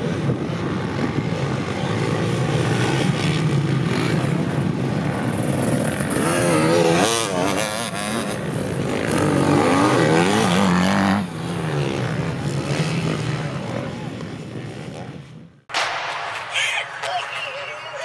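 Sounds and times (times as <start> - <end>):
motocross bike engines revving: 0.0 - 15.5.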